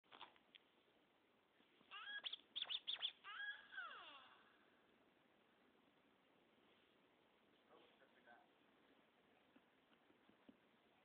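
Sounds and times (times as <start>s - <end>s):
scratched pitched sample: 1.9s - 3.2s.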